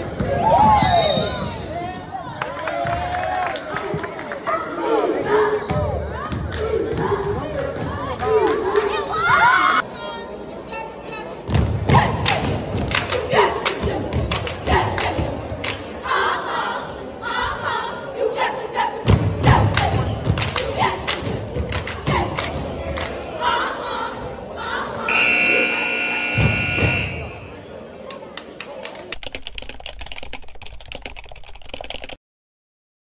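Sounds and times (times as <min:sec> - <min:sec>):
cheerleaders chanting: 0:04.6 - 0:27.5.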